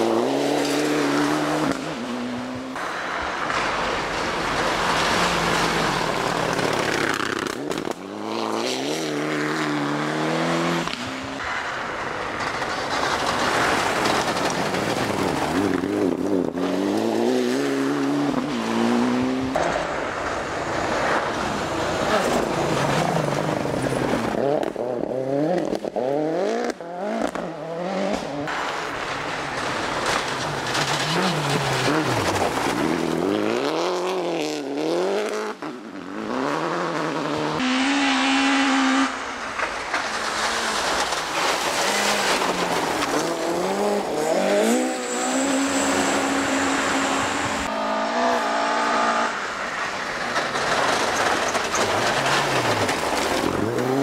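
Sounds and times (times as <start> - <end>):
tyres on gravel: 0.0 - 35.1, 39.1 - 48.4, 49.3 - 54.0
rally car engines revving: 0.0 - 54.0.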